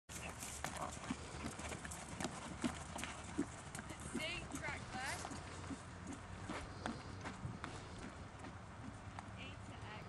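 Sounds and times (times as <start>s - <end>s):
horse hooves thudding on sand: 0.1s - 10.0s.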